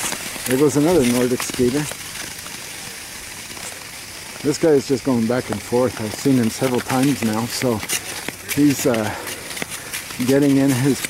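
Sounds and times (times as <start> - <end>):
skate blades hissing on ice: 0.0 - 11.0.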